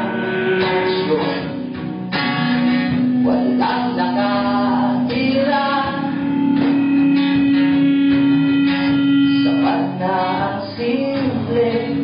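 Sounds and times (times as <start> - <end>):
person singing: 0.0 - 1.8, 2.9 - 12.0
guitar strumming: 0.0 - 12.0
long held note: 6.1 - 9.9.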